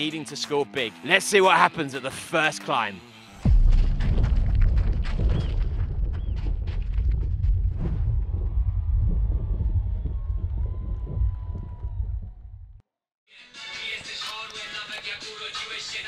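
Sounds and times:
sharp clicks and crunching hits: 3.4 - 8.5
heavy low rumble: 3.4 - 12.8.

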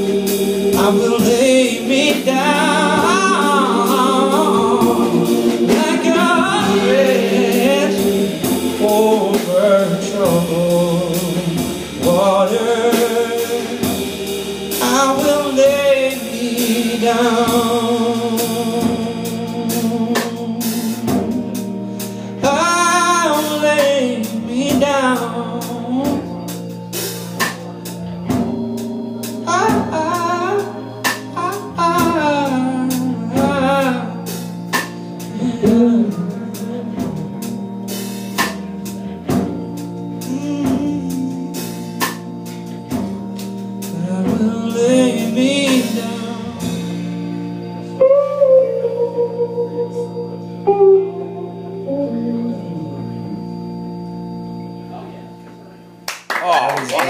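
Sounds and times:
electric guitar: 0.0 - 57.0
sustained organ chords: 0.0 - 57.0
man singing wavering notes: 43.9 - 55.2
applause: 56.1 - 57.0.

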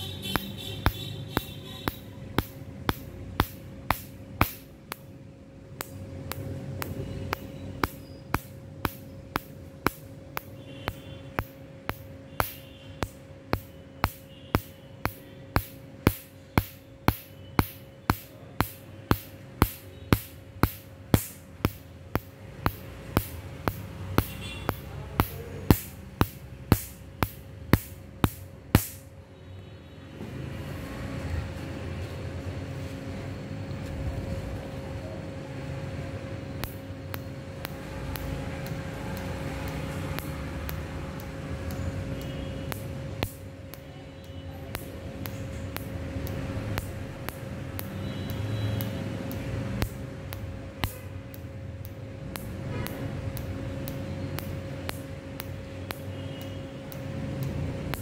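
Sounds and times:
laser pulses snapping: 0.0 - 5.2, 5.8 - 29.1, 36.6 - 43.9, 44.7 - 58.0
laser unit humming: 0.0 - 29.1, 34.9 - 58.0.

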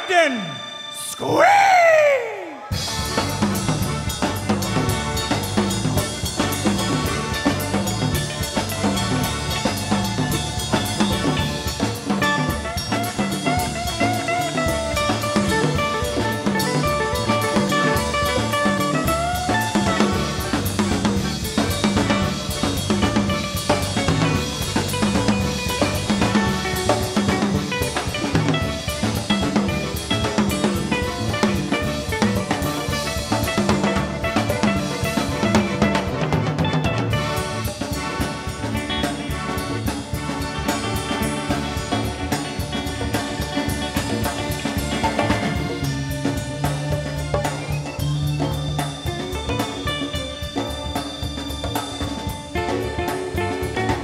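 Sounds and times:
live band playing: 0.0 - 54.0
drum kit beat: 1.2 - 54.0.

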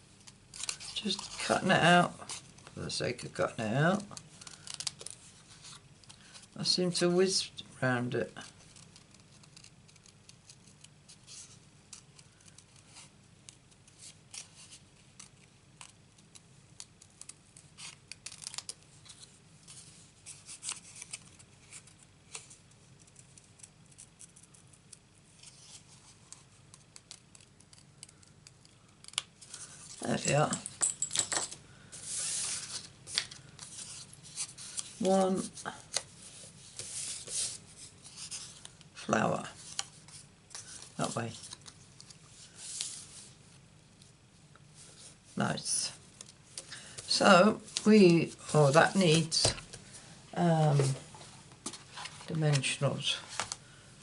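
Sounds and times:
paper rustling: 31.9 - 38.8, 39.6 - 43.4.

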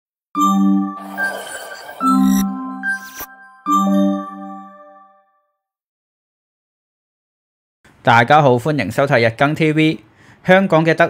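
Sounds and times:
logo jingle chime: 0.4 - 5.4.

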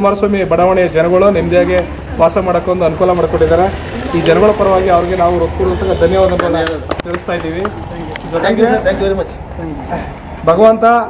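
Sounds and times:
man talking: 0.0 - 11.0
people clapping: 6.1 - 8.9.

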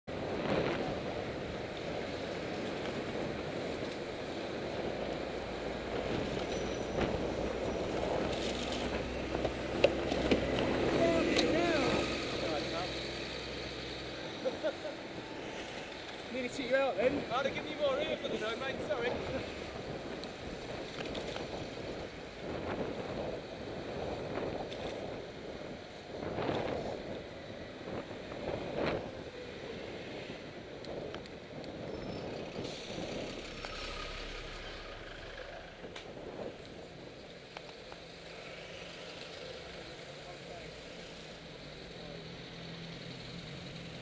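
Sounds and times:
street traffic: 0.0 - 44.0
wind rushing over microphone: 0.1 - 37.6
engines idling: 1.1 - 20.8, 29.3 - 44.0.

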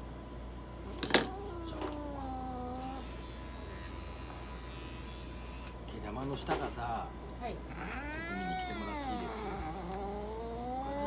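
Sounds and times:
cat yowling: 1.1 - 3.2, 7.7 - 11.0.

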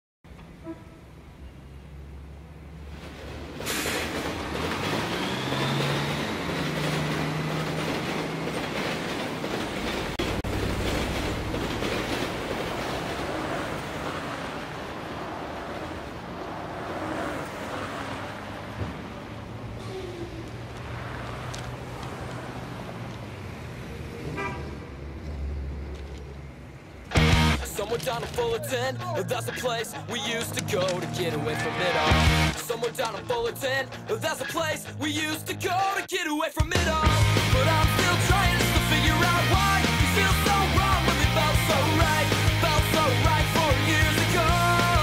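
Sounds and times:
train wheels rumbling on track: 0.3 - 31.6
car horn toot: 0.6 - 1.1, 24.4 - 24.7
high wheel squeal: 4.8 - 6.9.

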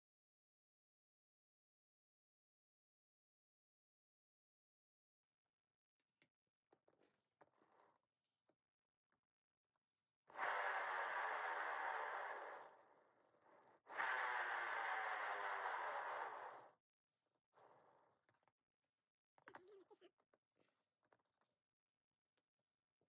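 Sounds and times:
paint spinner whirring: 10.3 - 16.7.

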